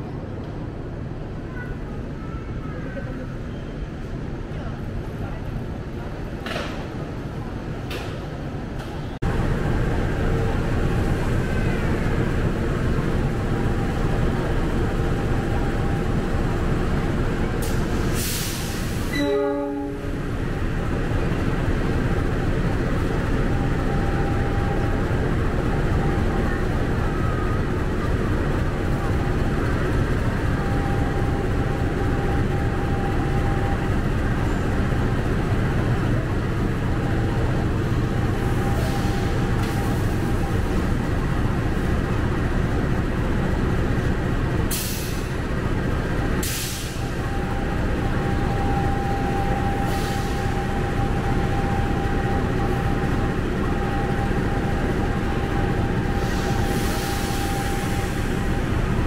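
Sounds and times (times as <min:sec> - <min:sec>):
diesel locomotive rumbling: 0:00.0 - 0:59.0
brief pitched tone: 0:19.1 - 0:20.2.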